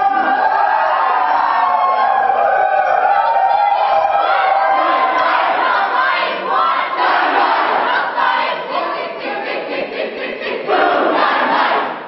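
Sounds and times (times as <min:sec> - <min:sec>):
crowd shouting and cheering: 0:00.0 - 0:09.3.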